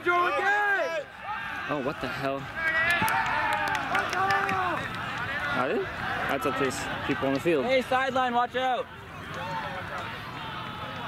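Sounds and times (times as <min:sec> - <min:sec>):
voices calling and chatting: 0:00.0 - 0:11.0.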